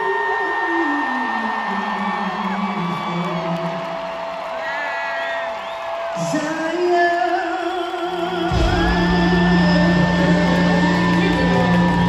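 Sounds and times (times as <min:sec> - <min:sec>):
crowd whooping: 0:00.0 - 0:12.0
person singing long held notes: 0:06.2 - 0:12.0
band playing over loudspeakers: 0:08.0 - 0:12.0.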